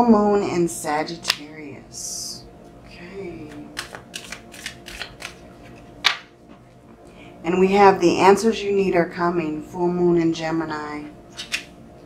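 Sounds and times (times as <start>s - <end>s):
cards flicking and snapping: 3.5s - 5.4s.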